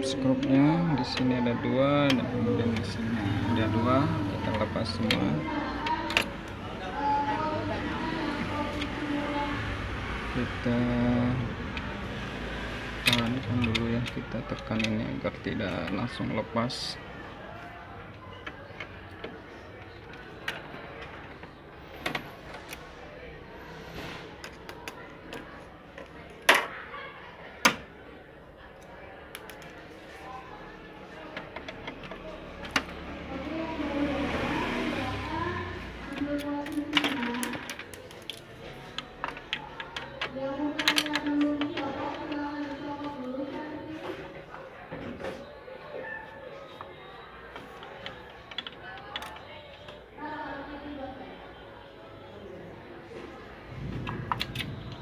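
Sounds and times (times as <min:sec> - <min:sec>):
plastic and metal parts clicking: 0:13.0 - 0:16.2, 0:36.1 - 0:42.4, 0:47.5 - 0:50.0.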